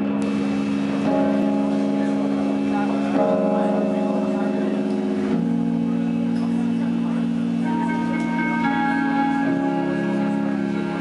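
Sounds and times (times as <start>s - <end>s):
band ringing chord drone: 0.0s - 11.0s.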